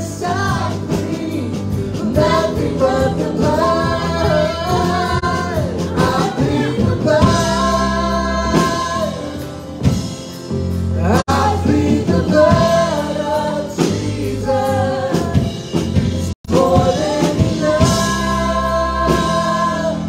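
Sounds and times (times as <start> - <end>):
worship band playing gospel song: 0.0 - 20.0.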